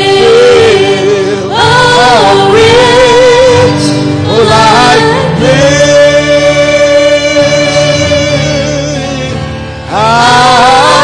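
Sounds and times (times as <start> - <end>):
gospel singing with instruments: 0.0 - 11.0.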